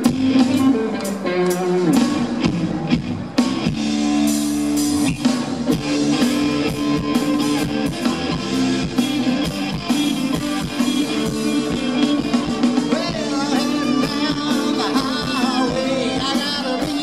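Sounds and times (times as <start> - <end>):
drum kit beat: 0.0 - 17.0
electric guitars: 0.0 - 17.0.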